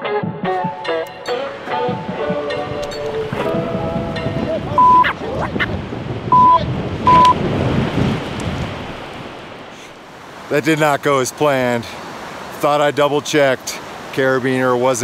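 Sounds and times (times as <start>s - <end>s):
music: 0.0s - 5.2s
wind: 0.3s - 15.0s
river water rushing: 1.2s - 15.0s
censor beeps: 4.8s - 5.1s, 6.3s - 7.4s.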